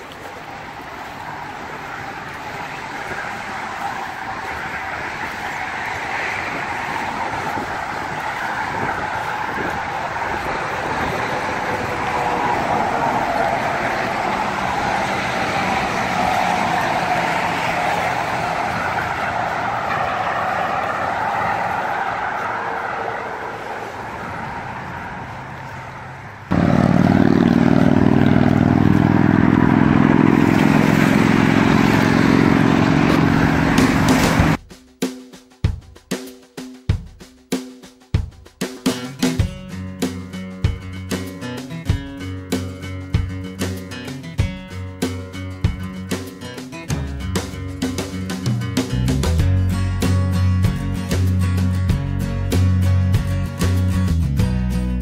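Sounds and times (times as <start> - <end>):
highway traffic passing: 0.0 - 34.6, 38.7 - 55.0.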